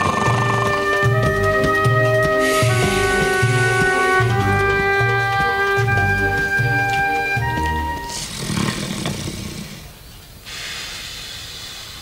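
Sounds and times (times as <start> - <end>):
man snoring: 8.1 - 9.8
hissing breath out: 8.1 - 12.0.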